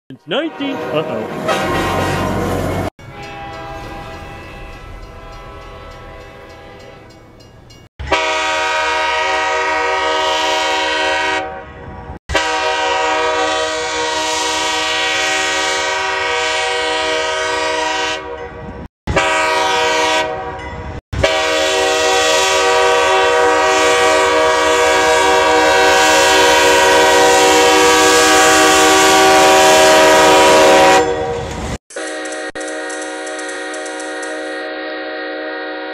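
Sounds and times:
locomotive air horn blasts: 0.3s - 7.1s, 8.0s - 20.6s, 21.2s - 35.9s.

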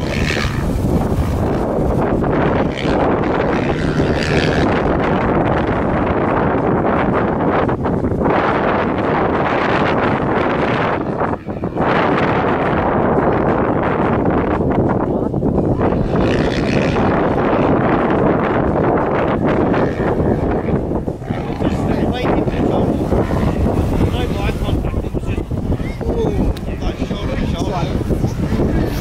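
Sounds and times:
motocross bike engines: 0.0s - 29.0s
wind buffeting microphone: 0.0s - 29.0s.

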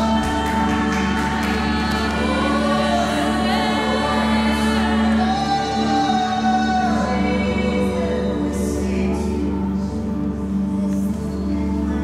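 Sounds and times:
group singing along: 0.0s - 9.8s
woman singing lead vocals: 0.0s - 9.8s.

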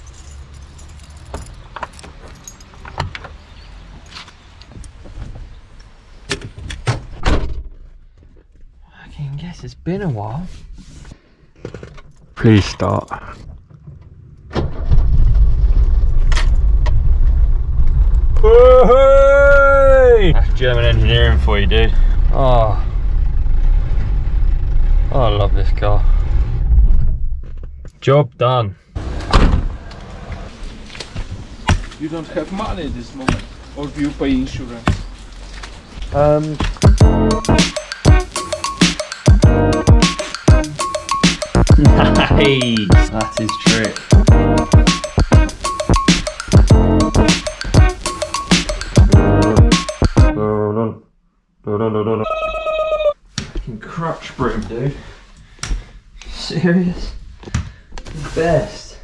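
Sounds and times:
keys jangling: 0.0s - 3.0s
outside rumble: 12.4s - 28.0s.

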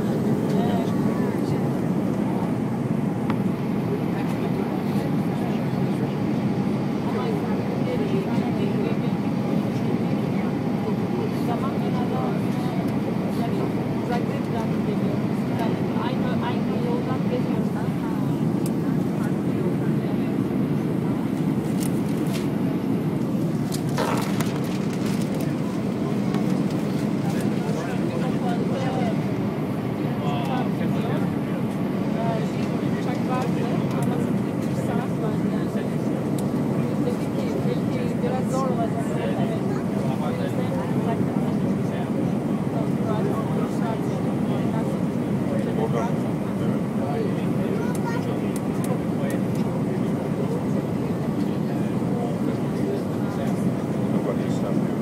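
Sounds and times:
airplane cabin engine roar: 0.0s - 55.0s.

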